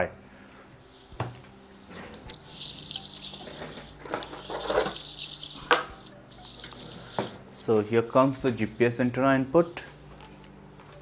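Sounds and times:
hands rustling small parts: 0.9s - 7.4s.

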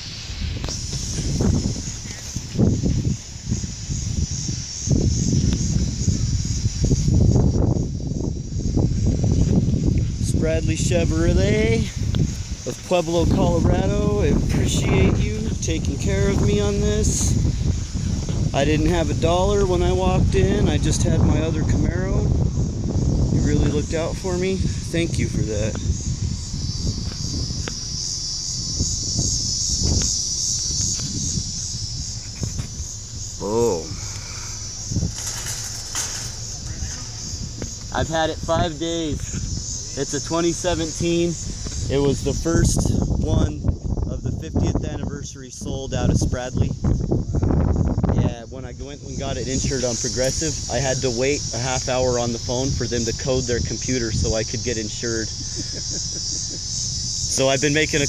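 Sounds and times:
low rumble: 0.0s - 45.2s
high hiss: 0.0s - 58.0s
insects chirping: 0.0s - 58.0s
wind buffeting microphone: 0.0s - 58.0s.

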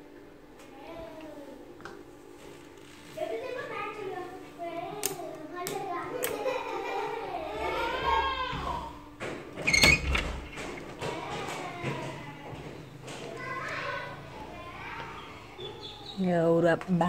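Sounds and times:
people talking: 3.2s - 8.3s, 13.2s - 17.0s.

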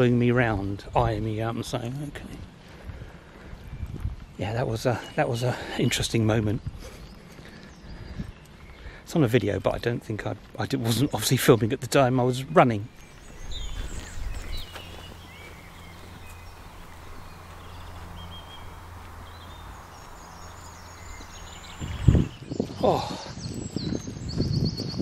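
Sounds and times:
wind rumble on microphone: 0.0s - 4.8s, 6.0s - 8.9s, 12.9s - 25.0s
wild birds calling: 2.5s - 9.3s, 12.4s - 23.8s
bird singing quick notes: 12.8s - 24.9s.

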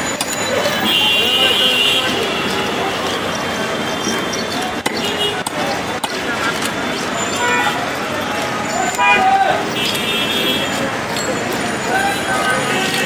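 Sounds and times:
people talking: 0.0s - 13.0s
street noise: 0.0s - 13.0s.

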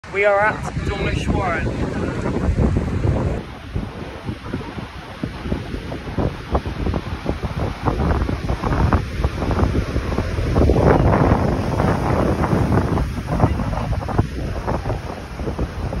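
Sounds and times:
surf breaking over boulders: 0.0s - 16.0s
wind buffeting microphone: 0.0s - 16.0s.

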